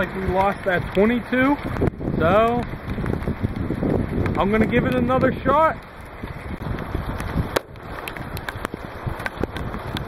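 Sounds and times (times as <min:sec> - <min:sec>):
steady rain: 0:00.0 - 0:10.0
wind noise: 0:00.0 - 0:10.0.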